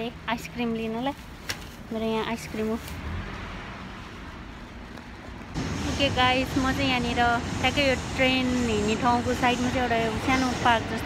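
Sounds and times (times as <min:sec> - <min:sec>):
street background rumble: 0:00.0 - 0:11.0.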